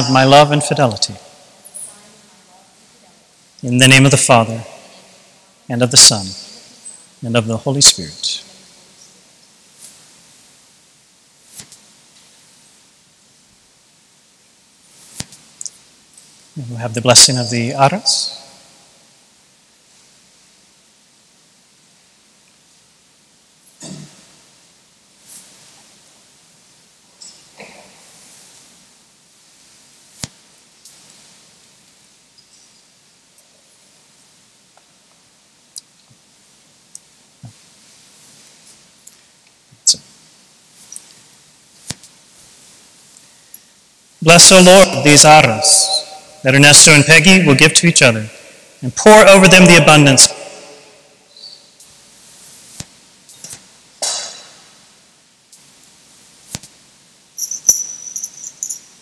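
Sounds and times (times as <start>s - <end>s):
high metallic jingling: 57.4s - 59.0s.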